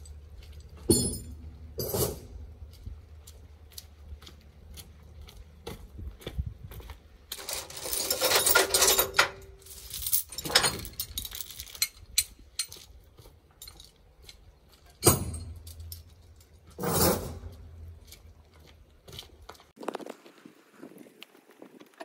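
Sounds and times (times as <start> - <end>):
heavy chain rattling and clanking: 0.0 - 2.3, 7.3 - 18.1.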